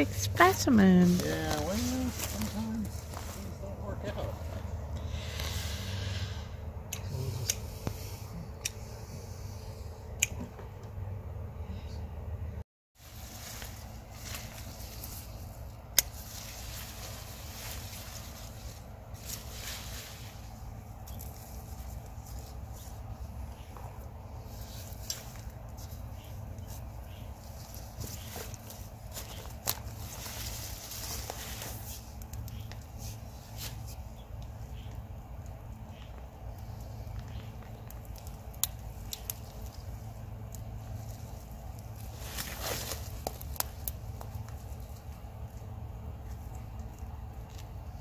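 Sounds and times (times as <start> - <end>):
leaves and straw rustling: 0.0 - 6.5, 13.0 - 48.0.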